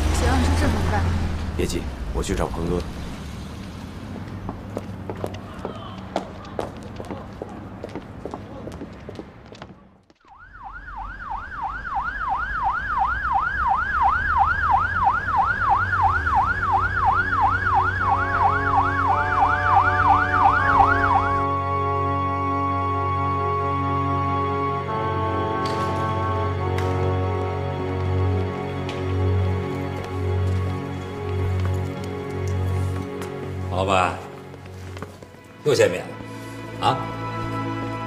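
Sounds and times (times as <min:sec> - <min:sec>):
footsteps on paving: 0:04.2 - 0:10.3, 0:26.7 - 0:36.3
police siren yelp: 0:10.3 - 0:22.1
soft music: 0:17.4 - 0:38.0.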